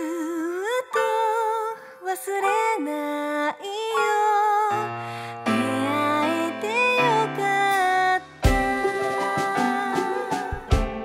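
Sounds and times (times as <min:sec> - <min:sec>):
woman singing with vibrato: 0:00.0 - 0:10.9
sustained musical accompaniment: 0:04.9 - 0:11.0.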